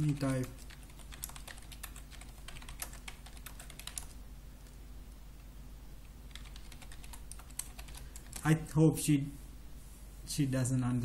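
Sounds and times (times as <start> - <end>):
computer keyboard typing: 0.0 - 4.2, 6.3 - 8.6.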